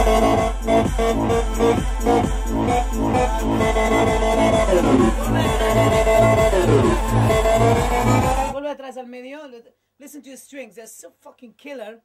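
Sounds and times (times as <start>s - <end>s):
electronic dance music: 0.0s - 8.6s.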